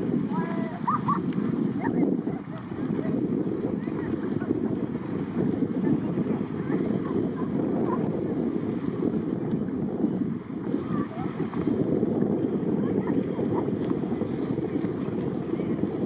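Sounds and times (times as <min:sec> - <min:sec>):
boat motor: 0:00.0 - 0:16.0
wind buffeting microphone: 0:00.0 - 0:16.0.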